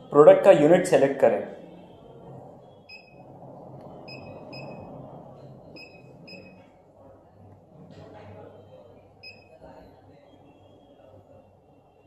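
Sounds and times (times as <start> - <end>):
short high keypad beeps: 4.0 - 5.0, 5.7 - 6.6, 9.2 - 9.6.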